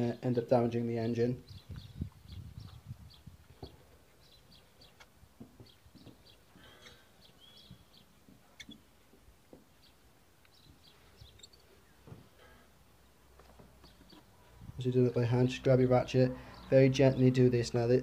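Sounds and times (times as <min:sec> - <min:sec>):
faint birdsong chirps: 0:00.0 - 0:18.0.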